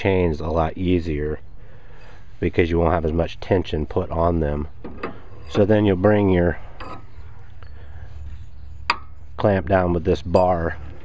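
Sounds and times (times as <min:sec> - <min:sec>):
low steady background rumble: 0:00.0 - 0:11.0.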